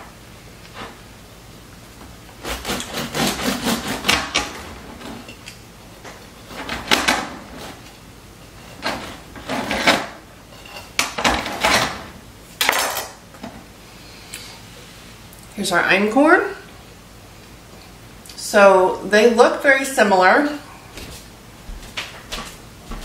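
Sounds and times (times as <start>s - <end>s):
knife sawing through bread crust: 2.4s - 4.2s.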